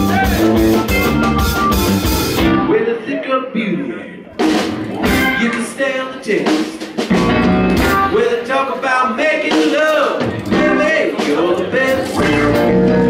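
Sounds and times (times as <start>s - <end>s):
bending guitar notes: 0.0s - 2.8s, 4.4s - 5.8s, 7.1s - 8.2s, 10.2s - 13.0s
drum kit: 0.0s - 2.8s, 4.3s - 13.0s
live band playing: 0.0s - 3.2s, 4.2s - 13.0s.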